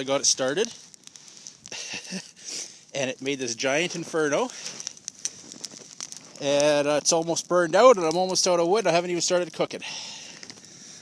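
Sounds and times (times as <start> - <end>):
fire crackling: 0.0 - 11.0
man laughing: 1.7 - 2.4.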